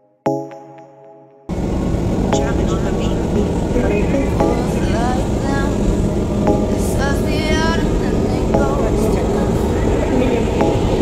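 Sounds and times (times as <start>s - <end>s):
train rumble from inside: 1.5s - 11.0s
voices talking: 1.5s - 11.0s.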